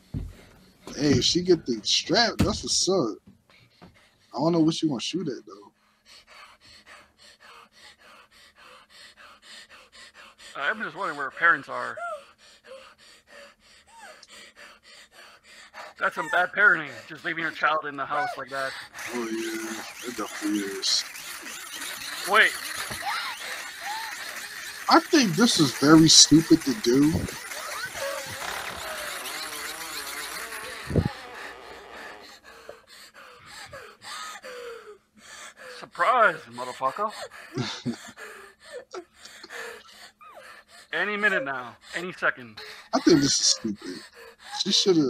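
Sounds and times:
girl gasping and breathing heavily: 11.8s - 17.2s, 21.5s - 29.3s, 30.6s - 36.0s, 42.6s - 45.0s
short high vocal sounds: 19.0s - 32.2s.

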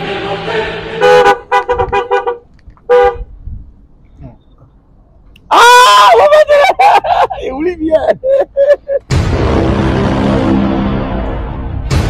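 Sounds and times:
man laughing loudly: 6.0s - 9.1s.

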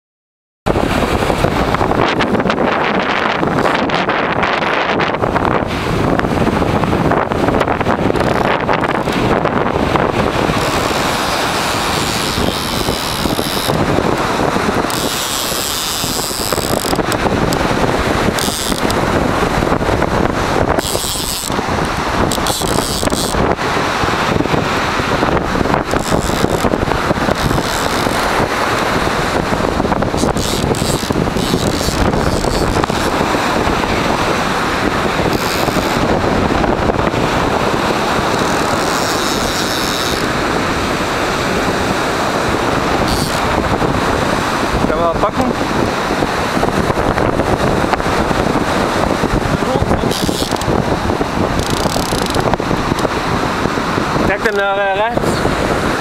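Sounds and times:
wind blowing across microphone: 0.7s - 56.0s.

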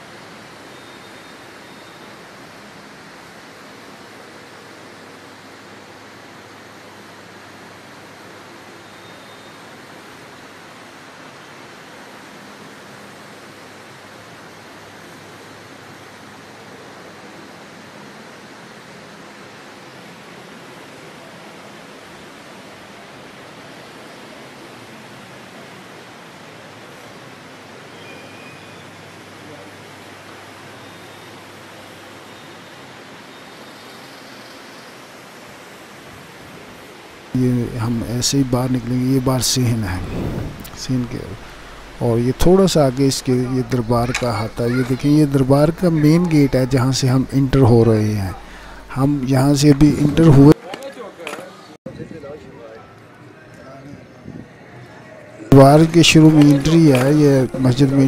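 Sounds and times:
steady hiss: 0.0s - 50.6s, 55.5s - 58.0s.

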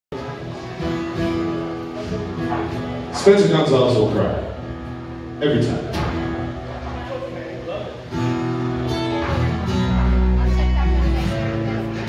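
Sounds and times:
live band playing: 0.1s - 12.0s.

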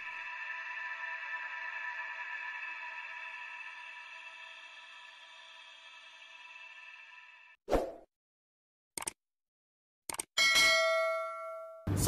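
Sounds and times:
click sound effects: 9.0s - 9.2s, 10.1s - 10.3s
bell ding: 10.4s - 12.0s.

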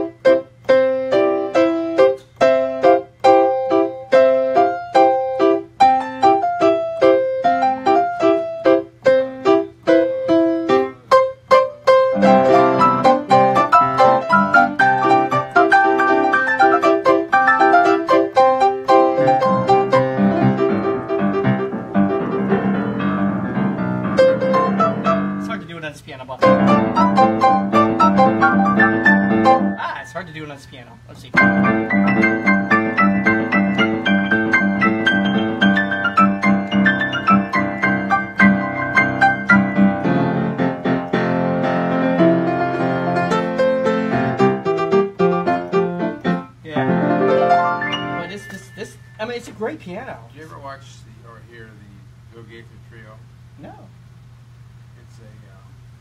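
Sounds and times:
grand piano fast runs and chords: 0.0s - 49.9s.

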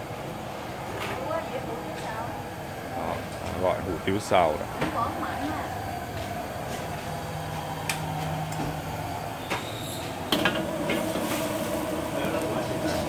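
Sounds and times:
steady background din: 0.0s - 13.0s.

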